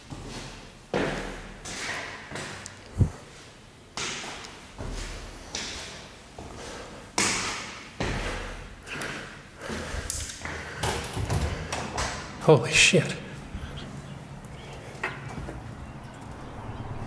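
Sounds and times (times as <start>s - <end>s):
footsteps on concrete stairs: 0.0s - 12.4s, 13.9s - 16.3s.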